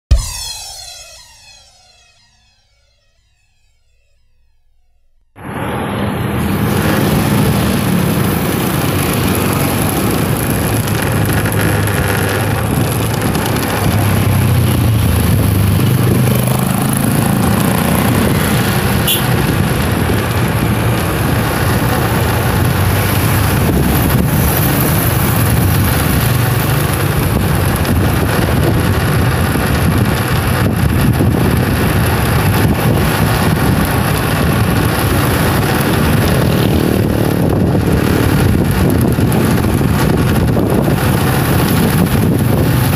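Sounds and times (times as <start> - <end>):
motorcycle engine running: 5.4 - 42.9
road noise rush: 5.4 - 42.9.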